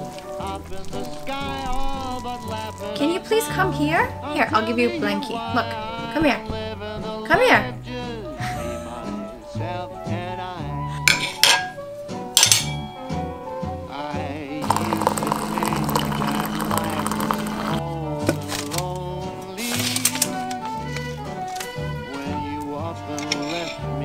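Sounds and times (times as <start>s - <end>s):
water pouring into glass mug: 0.0s - 3.6s, 14.6s - 17.8s
background music: 0.0s - 24.0s
glass and dishes clinking: 11.1s - 11.8s, 12.4s - 13.3s, 14.6s - 17.8s, 23.2s - 24.0s
water dispenser hum: 14.6s - 17.8s.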